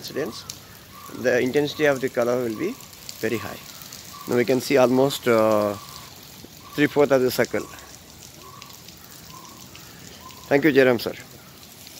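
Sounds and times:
hose spray on foliage and paving: 0.0s - 11.9s.

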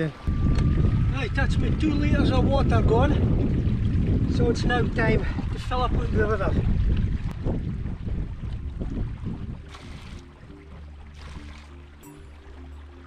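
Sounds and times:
wind rumbling on microphone: 0.0s - 12.6s
water gurgling into bottle: 0.3s - 13.0s.

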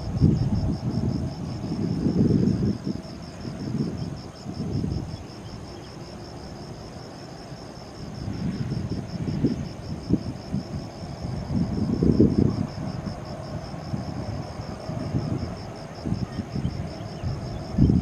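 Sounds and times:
insects chirping: 0.0s - 18.0s
wind gusting against microphone: 0.0s - 18.0s.

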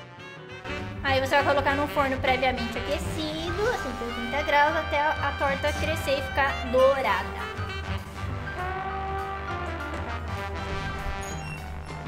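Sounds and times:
instrumental music with bass line: 0.0s - 12.0s.

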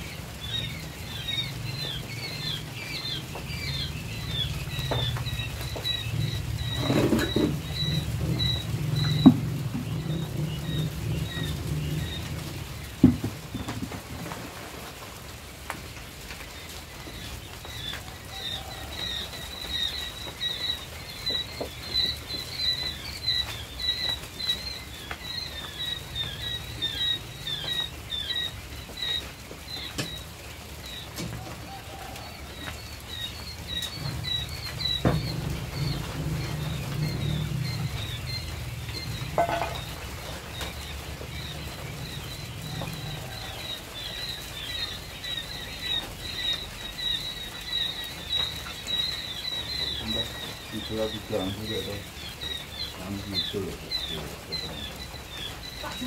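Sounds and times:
quail peeping: 0.0s - 56.0s.

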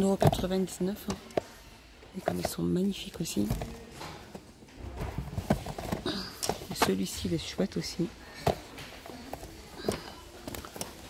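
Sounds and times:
planners knocking and clicking: 2.2s - 7.4s.

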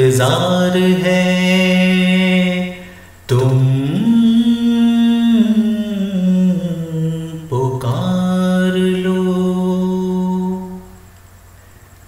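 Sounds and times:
man humming a long note: 0.0s - 11.0s
man singing: 0.0s - 11.0s.

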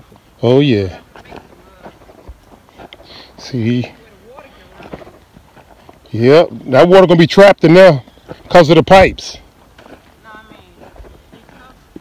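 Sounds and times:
footsteps on dry dirt: 0.0s - 12.0s.

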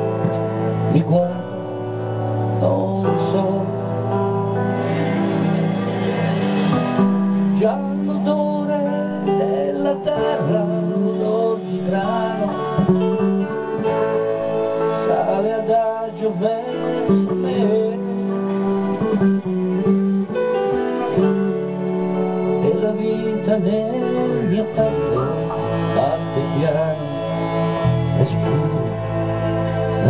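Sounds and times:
acoustic guitar chords: 0.0s - 30.0s
gliding wavering lead melody: 0.0s - 30.0s.

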